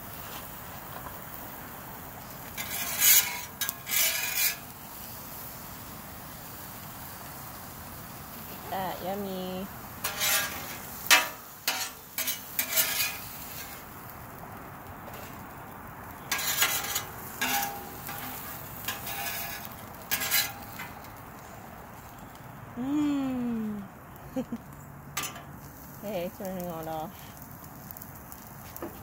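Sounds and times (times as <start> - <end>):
faint sizzle: 0.0 - 29.0
spatula scraping metal griddle: 2.4 - 5.5, 9.9 - 14.0, 15.0 - 15.5, 16.1 - 22.1, 25.2 - 25.8.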